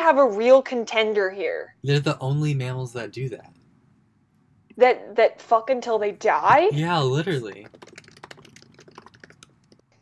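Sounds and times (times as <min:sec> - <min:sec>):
typing on computer keyboard: 0:06.9 - 0:10.0.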